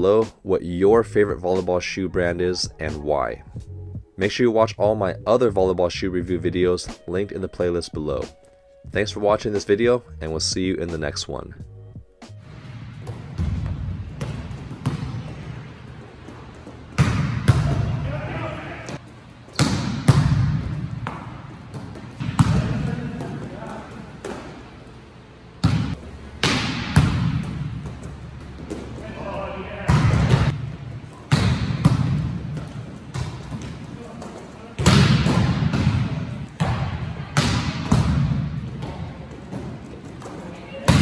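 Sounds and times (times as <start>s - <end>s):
volleyballs striking gym floor: 12.7s - 24.7s, 25.6s - 41.0s
players' voices: 17.5s - 19.0s, 22.2s - 24.5s, 28.8s - 30.6s.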